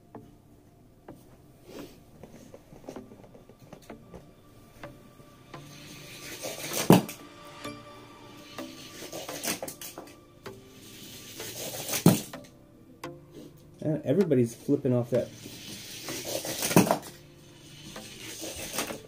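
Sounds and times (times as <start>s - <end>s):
toy cars rattling down plastic track: 15.3s - 17.1s, 17.7s - 19.0s.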